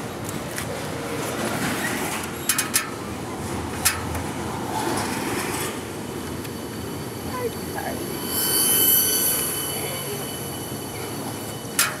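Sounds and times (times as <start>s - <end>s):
train wheels squealing on rails: 1.6s - 3.1s, 4.7s - 12.0s.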